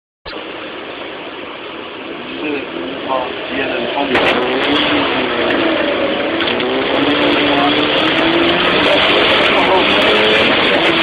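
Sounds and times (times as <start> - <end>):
car engine and road noise: 0.3 - 11.0.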